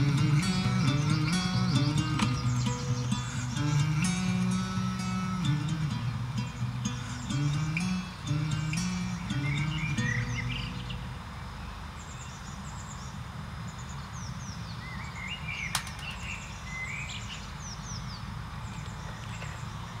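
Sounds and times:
guitar note: 0.0s - 11.2s
birds warbling: 0.0s - 13.2s
birds chirping: 0.0s - 20.0s
low background noise: 0.0s - 20.0s
sharp click: 15.7s - 16.3s.

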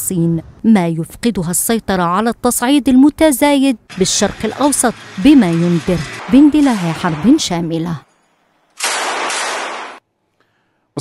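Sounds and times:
machine-gun fire: 3.9s - 8.0s, 8.8s - 10.1s.

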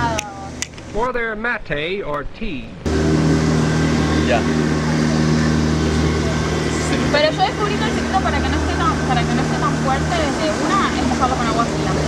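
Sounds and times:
low mechanical hum: 0.0s - 1.2s, 2.2s - 12.0s.

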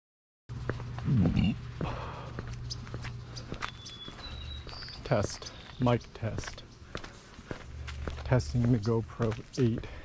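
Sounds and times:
footsteps on concrete: 0.5s - 10.0s
steady low hum: 0.5s - 10.0s.

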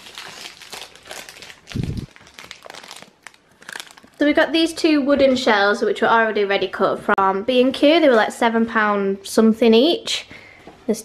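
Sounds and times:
plastic wrapper crinkling: 0.0s - 4.7s.

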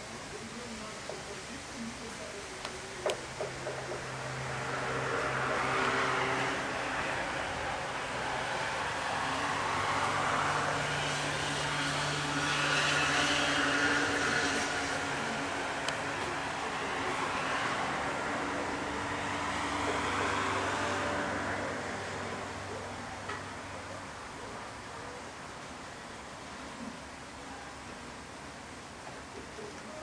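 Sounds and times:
car engines humming: 0.0s - 30.0s.

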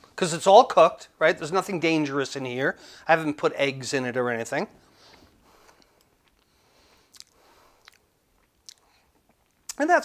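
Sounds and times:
mouth smacking: 5.8s - 9.8s
small mouth clicks: 6.0s - 9.8s.

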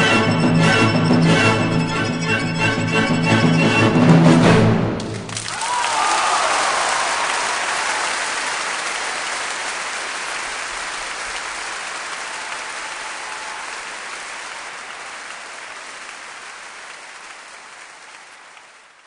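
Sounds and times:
large audience applauding: 5.0s - 19.0s.

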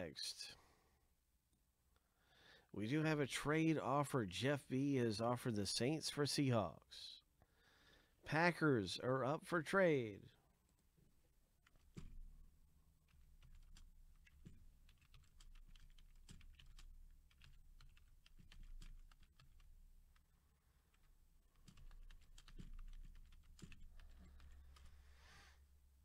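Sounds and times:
faint typing on computer keyboard: 11.6s - 25.1s.

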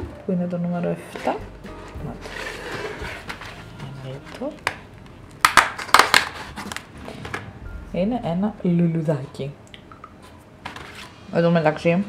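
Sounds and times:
cardboard rustling: 1.1s - 4.7s.

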